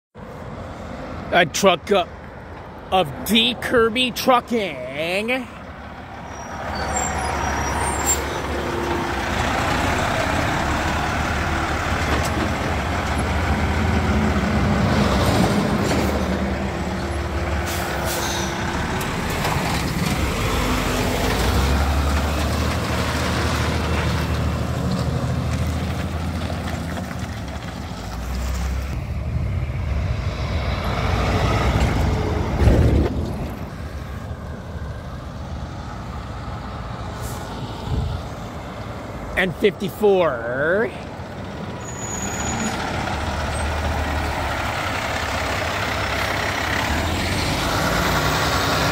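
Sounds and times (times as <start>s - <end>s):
diesel truck engine rumble: 0.2s - 48.9s
car passing: 4.8s - 48.9s.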